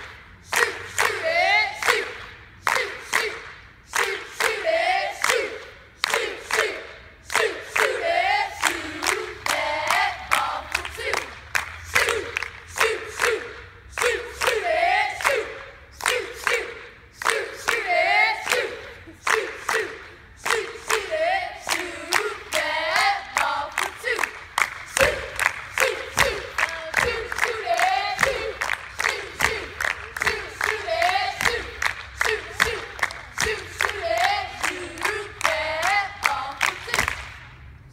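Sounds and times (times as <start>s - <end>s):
hand claps: 0.0s - 8.0s, 8.6s - 37.6s
girls chanting a cheer: 0.0s - 37.4s.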